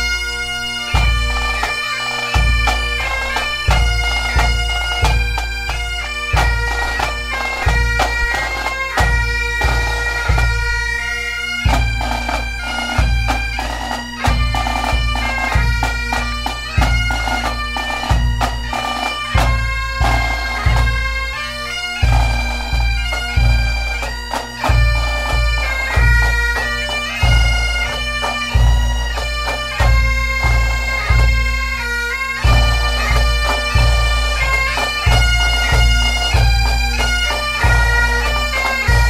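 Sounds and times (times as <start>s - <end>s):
bagpipes playing a tune: 0.0s - 39.0s.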